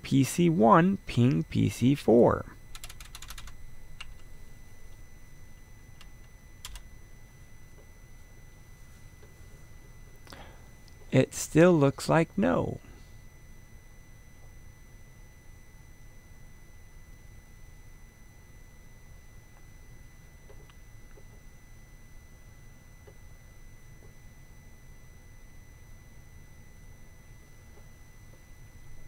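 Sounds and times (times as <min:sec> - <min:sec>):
faint high-pitched whine: 0:00.0 - 0:29.0
low hum and hiss: 0:00.0 - 0:29.0.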